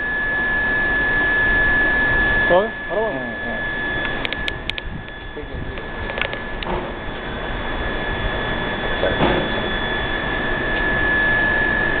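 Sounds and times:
high-pitched whine: 0:00.0 - 0:12.0
gas flame rushing: 0:00.2 - 0:12.0.

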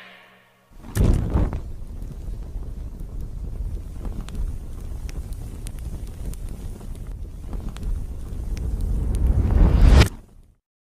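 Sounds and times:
fire whooshing and crackling: 0:00.7 - 0:10.6.

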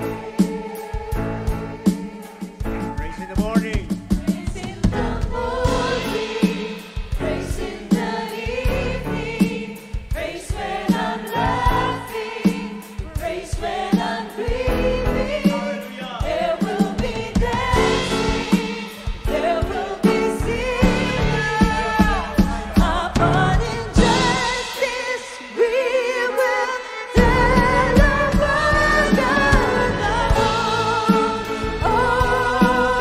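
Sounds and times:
drums: 0:00.0 - 0:33.0
keyboard: 0:00.0 - 0:33.0
singers performing praise song: 0:00.0 - 0:33.0.

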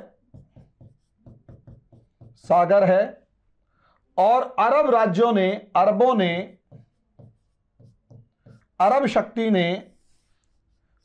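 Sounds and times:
pen writing on board: 0:00.2 - 0:02.5, 0:06.5 - 0:08.9, 0:09.9 - 0:11.0
man talking: 0:02.4 - 0:03.2, 0:04.2 - 0:06.6, 0:08.8 - 0:10.0.

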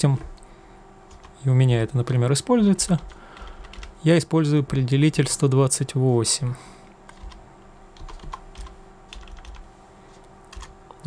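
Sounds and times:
low steady hum: 0:00.0 - 0:11.0
keyboard keys clicking: 0:01.1 - 0:01.4, 0:02.8 - 0:03.9, 0:07.1 - 0:07.4, 0:08.0 - 0:09.6, 0:10.5 - 0:10.7.

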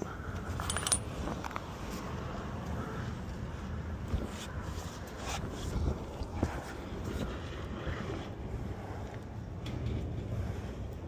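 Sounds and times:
metal parts clinking on pavement: 0:00.2 - 0:01.8.

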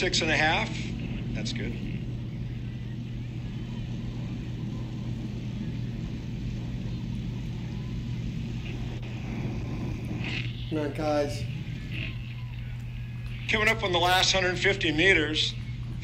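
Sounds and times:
steady low motor hum: 0:00.0 - 0:16.0.

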